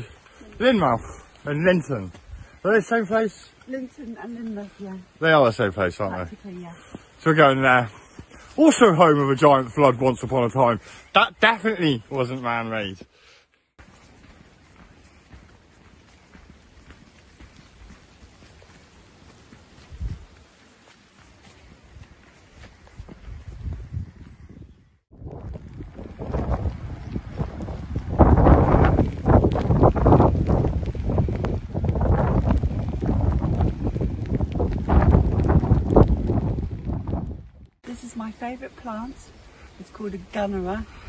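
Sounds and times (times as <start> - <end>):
wind buffeting microphone: 14.3 - 20.6, 21.5 - 41.0.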